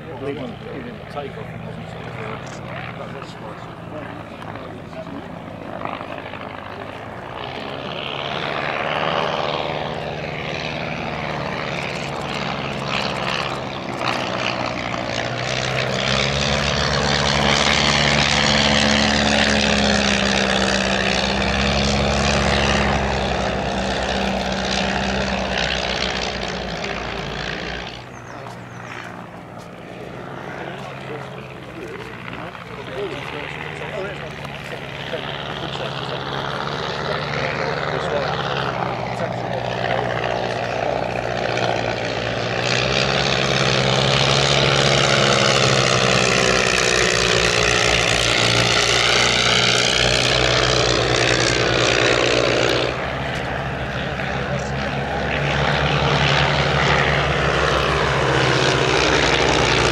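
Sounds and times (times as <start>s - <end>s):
propeller planes droning past: 0.0s - 59.9s.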